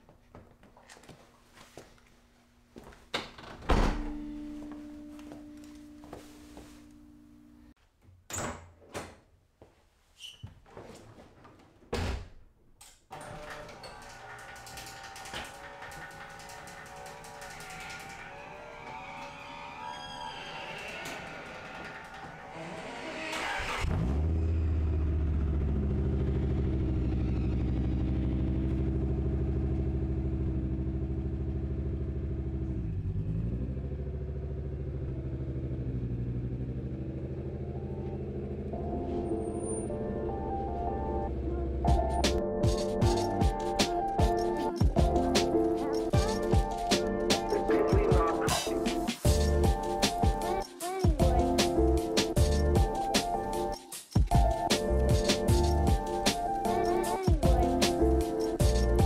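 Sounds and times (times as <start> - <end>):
car engine starting and running: 20.6 - 44.1
loud music with bass: 41.9 - 59.0.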